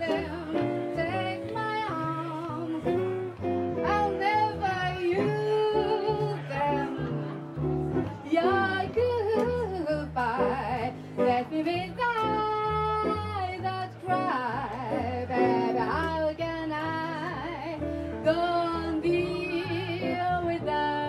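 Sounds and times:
woman singing with vibrato: 0.0 - 3.0, 3.8 - 7.1, 8.2 - 21.0
electric guitar: 0.0 - 21.0
upright double bass: 0.0 - 21.0.

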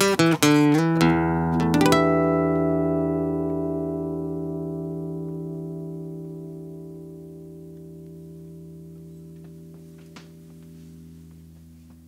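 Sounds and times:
acoustic guitar chord ringing: 0.0 - 12.0.

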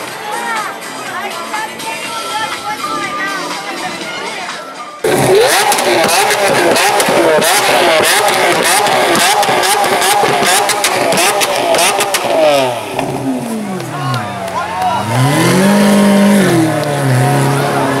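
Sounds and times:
voices: 0.0 - 9.6, 10.4 - 18.0
sports car engine revving: 5.0 - 18.0.

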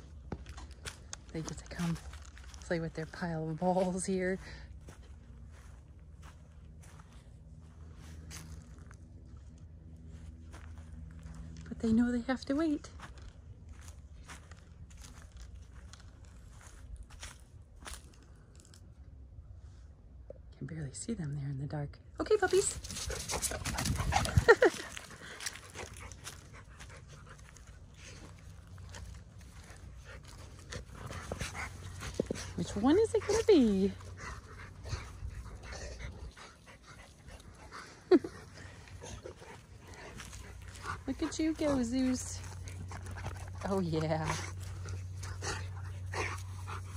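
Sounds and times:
dogs scuffling on grass: 0.1 - 18.2, 22.5 - 46.9
dogs breathing: 22.8 - 46.9
footsteps crunching on dry leaves: 22.9 - 33.3.

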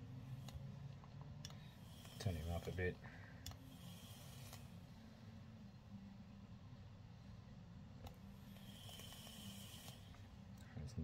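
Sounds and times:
wicks sizzling on heated coils: 0.0 - 6.5, 7.4 - 11.0.

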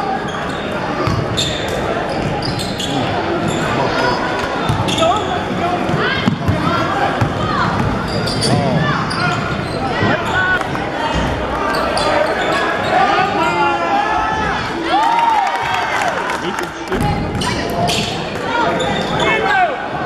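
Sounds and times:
voices echoing in hall: 0.0 - 20.0
sneakers squeaking: 0.1 - 13.6, 17.0 - 19.5.

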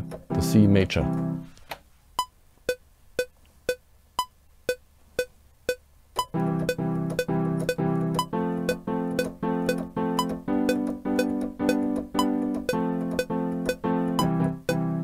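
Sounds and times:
piano chords: 0.0 - 1.4, 6.2 - 15.0
metronome clicking: 2.2 - 15.0.

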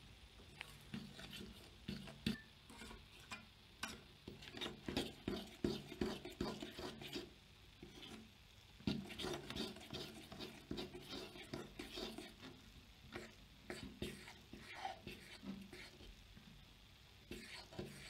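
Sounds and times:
utensil scraping metal pot: 0.5 - 8.3, 8.9 - 16.1, 17.3 - 18.0.

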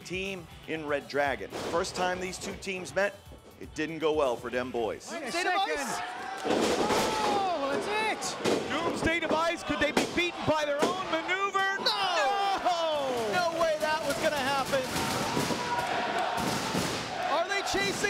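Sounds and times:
people shouting: 5.1 - 18.0.

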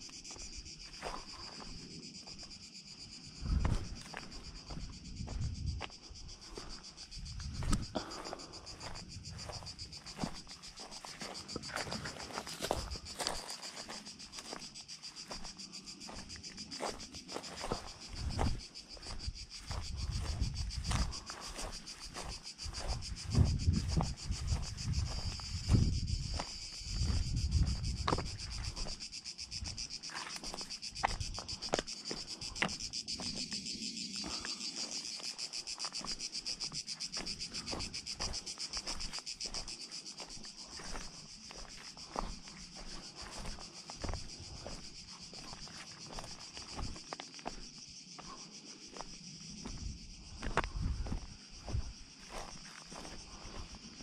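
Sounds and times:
footsteps on dry grass and stones: 0.0 - 54.0
insects chirring: 0.0 - 54.0.

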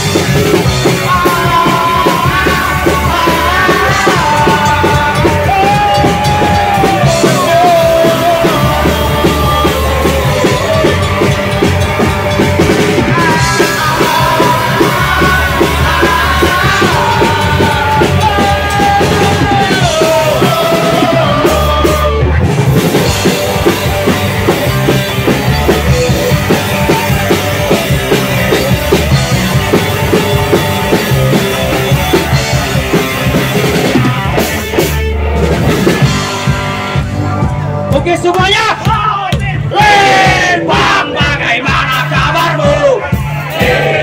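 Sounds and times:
driving drum beat: 0.0 - 44.0
punk rock band playing: 0.0 - 44.0.

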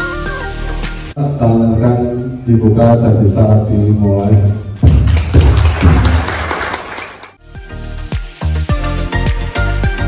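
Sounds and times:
background music: 0.0 - 10.0
audience applauding: 4.8 - 7.4.

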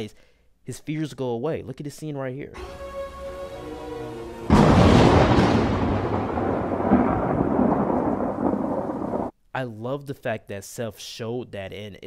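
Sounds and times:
rolling thunder rumble: 4.5 - 9.3
thunderclap: 4.5 - 9.3.

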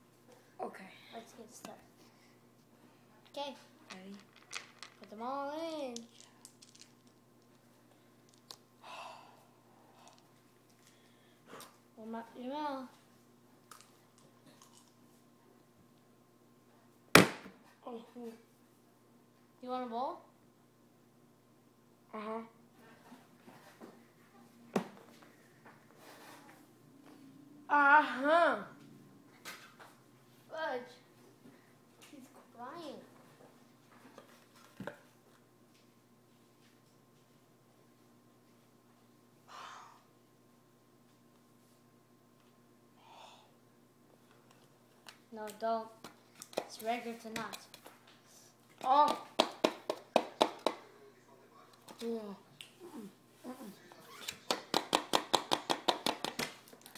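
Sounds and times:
hand slaps on hard surface: 49.0 - 50.8, 54.5 - 56.6.

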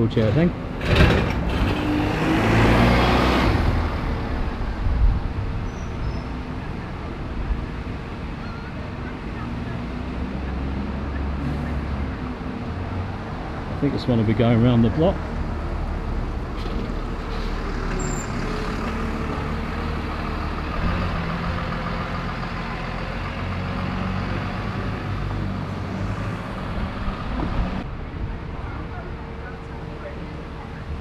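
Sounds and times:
diesel bus pulling away: 0.3 - 31.0
bus engine idling: 15.4 - 31.0.

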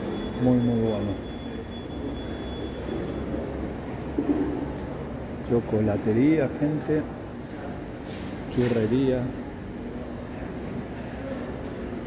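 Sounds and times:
low rumble of indoor hall: 0.0 - 12.0.

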